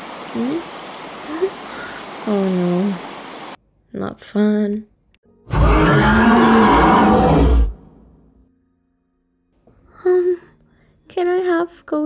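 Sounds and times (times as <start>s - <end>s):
person scream-roar: 5.5s - 7.8s.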